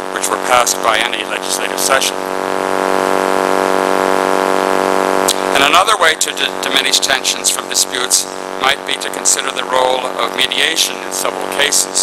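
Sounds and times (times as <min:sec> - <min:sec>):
loud steady hum: 0:00.0 - 0:12.0.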